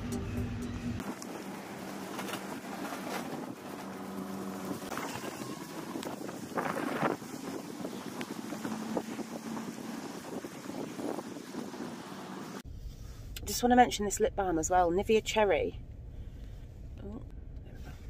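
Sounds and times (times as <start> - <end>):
plastic bag rustling: 1.2 - 7.6
wind buffeting microphone: 4.8 - 12.6.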